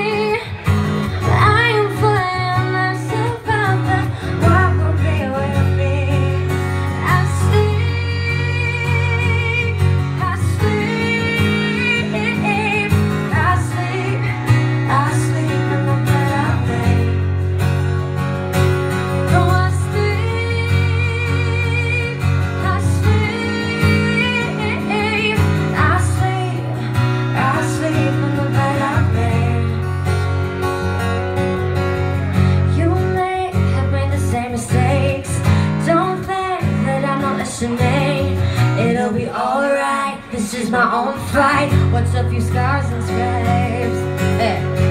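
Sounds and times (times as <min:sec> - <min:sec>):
woman singing: 0:00.0 - 0:17.5, 0:19.1 - 0:30.1, 0:32.6 - 0:44.9
acoustic guitar: 0:00.0 - 0:44.9.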